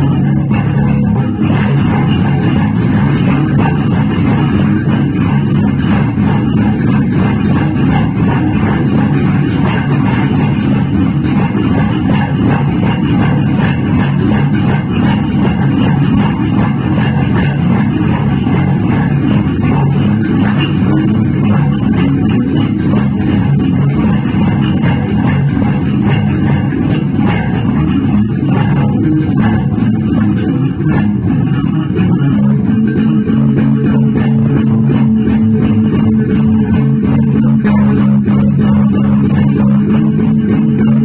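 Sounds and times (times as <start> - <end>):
electric bass funk groove: 0.0 - 41.0.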